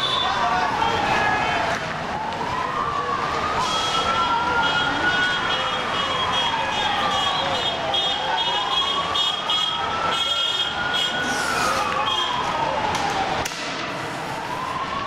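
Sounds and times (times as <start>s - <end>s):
noisy street background: 0.0s - 15.0s
police siren wailing: 0.0s - 15.0s.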